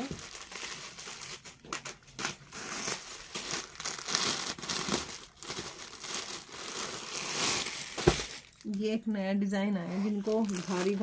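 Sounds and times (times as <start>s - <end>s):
packaging crinkling and rustling: 0.0s - 8.9s, 9.9s - 11.0s.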